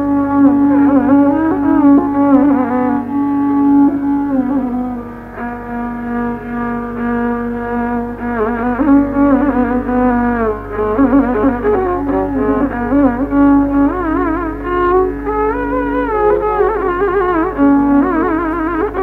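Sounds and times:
steady low hum: 0:00.0 - 0:19.0
violin playing slow melody: 0:00.0 - 0:19.0.

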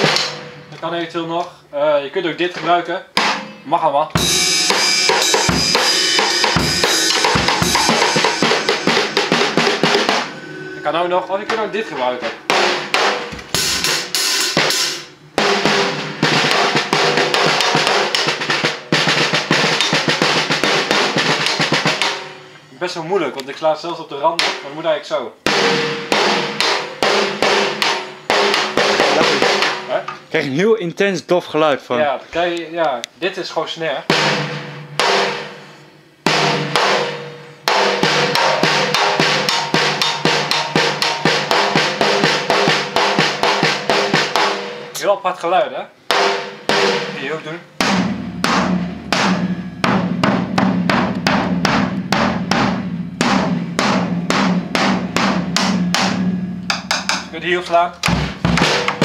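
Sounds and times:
snare drum hits with rimshots: 0:03.2 - 0:03.5, 0:19.4 - 0:22.4, 0:58.0 - 0:59.0
low drum ring: 0:04.2 - 0:22.6, 0:46.1 - 0:59.0.

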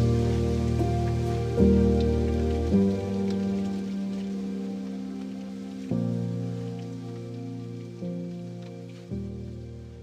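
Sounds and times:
soft crackling hiss: 0:00.0 - 0:10.0.

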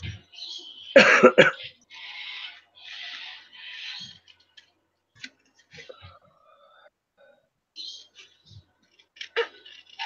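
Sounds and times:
person coughing: 0:01.0 - 0:01.7.

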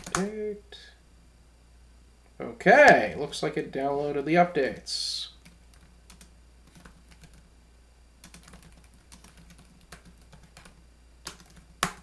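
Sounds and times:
computer keyboard key clicks: 0:00.0 - 0:00.3.

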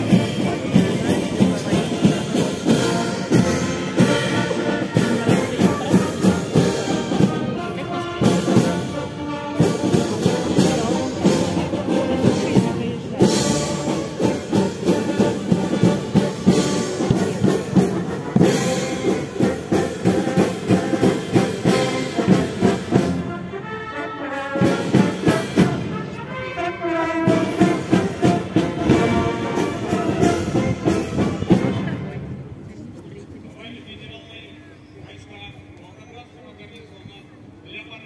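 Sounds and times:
steady drum beat: 0:00.0 - 0:23.3, 0:24.6 - 0:26.2
brass band playing a march: 0:00.0 - 0:32.5.

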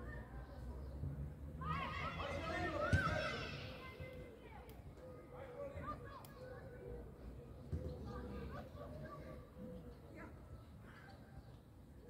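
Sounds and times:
young players shouting: 0:01.6 - 0:04.1.

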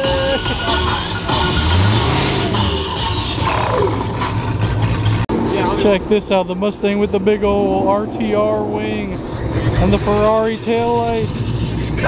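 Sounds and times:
loud dance music: 0:00.0 - 0:04.1
car engine pulling away: 0:00.5 - 0:10.2.

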